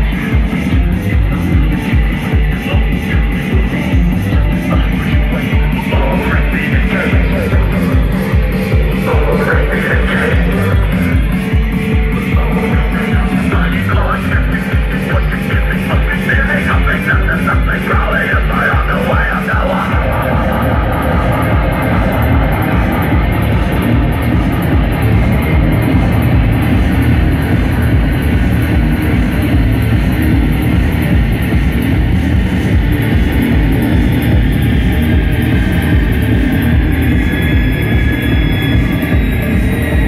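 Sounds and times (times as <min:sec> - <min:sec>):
distorted electric guitar: 0:00.0 - 0:40.0
keyboard synths: 0:00.0 - 0:40.0
steady drum beat: 0:00.0 - 0:40.0.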